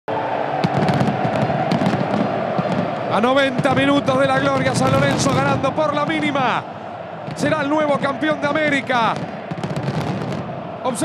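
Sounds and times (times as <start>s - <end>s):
stadium crowd roaring: 0.1s - 11.0s
fireworks cracking and popping: 0.6s - 5.6s, 9.2s - 10.5s.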